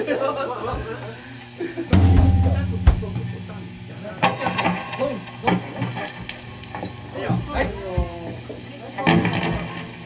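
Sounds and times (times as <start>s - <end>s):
amplifiers humming: 1.5s - 10.0s
band's last note: 2.0s - 4.3s.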